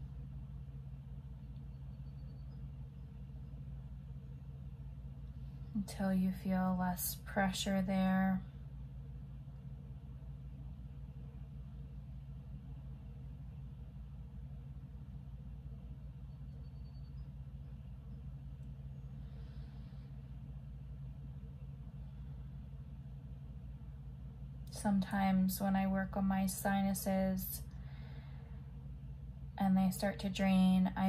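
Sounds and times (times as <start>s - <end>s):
electrical hum: 0.0s - 31.0s.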